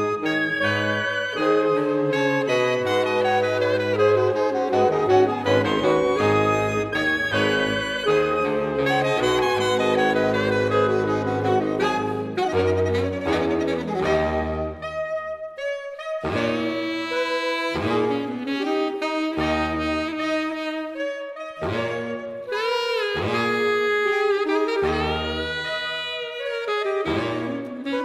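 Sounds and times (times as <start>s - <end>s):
saxophone ensemble chords: 0.0s - 28.0s.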